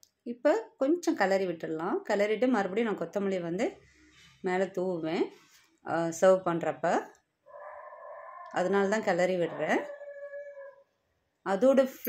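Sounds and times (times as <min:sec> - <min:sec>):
woman speaking: 0:00.3 - 0:03.8, 0:04.5 - 0:05.3, 0:05.9 - 0:07.1, 0:08.5 - 0:10.1, 0:11.5 - 0:12.0.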